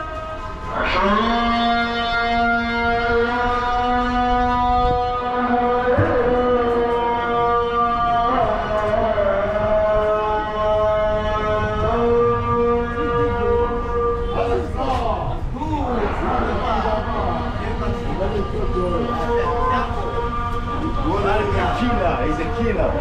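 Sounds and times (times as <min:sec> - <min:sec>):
man chanting call to prayer: 0:00.0 - 0:23.0.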